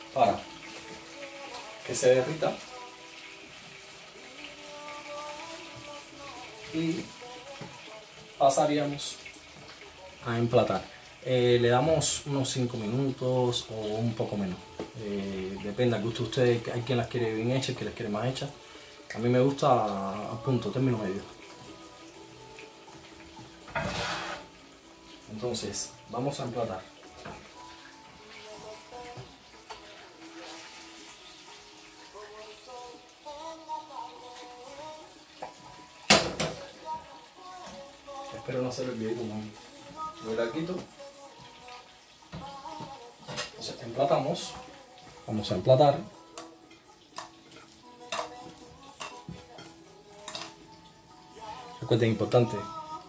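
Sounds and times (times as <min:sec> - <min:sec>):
quiet background music: 0:00.0 - 0:53.0
utensils and dishes clinking: 0:23.4 - 0:24.6, 0:43.2 - 0:44.6, 0:46.4 - 0:50.7
frying pan and spatula clank: 0:36.1 - 0:36.6.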